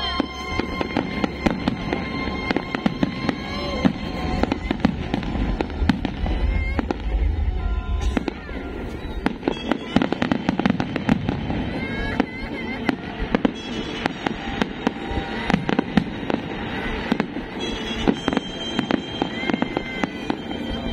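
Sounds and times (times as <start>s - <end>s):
fireworks bangs and crackles: 0.0s - 20.9s
music: 0.0s - 20.9s.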